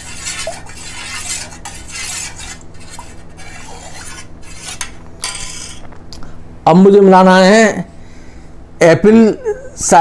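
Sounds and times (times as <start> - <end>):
metal spoon scraping steel pot: 0.0 - 5.9.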